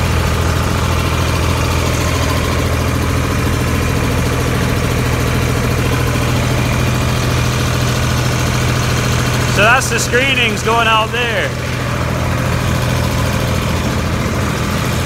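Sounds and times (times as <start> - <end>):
grain cleaner machine humming: 0.0 - 15.0.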